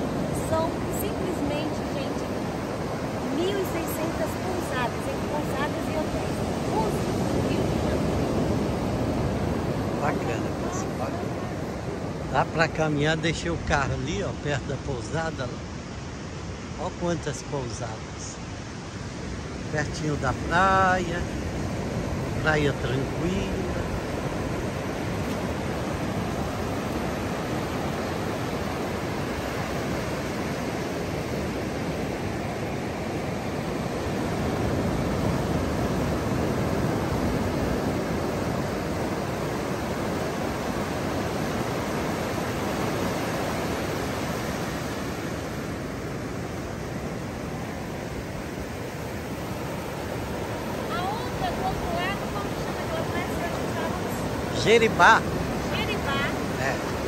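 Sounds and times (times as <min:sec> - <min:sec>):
ocean surf on sandy beach: 0:00.0 - 0:57.0.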